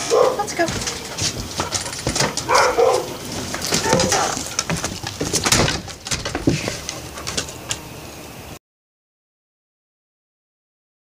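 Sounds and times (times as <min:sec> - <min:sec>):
storm door swinging shut: 0:00.0 - 0:07.8
dog claws on wooden deck: 0:00.0 - 0:07.9
footsteps on wooden deck: 0:00.0 - 0:08.0
bird calling: 0:00.0 - 0:08.5.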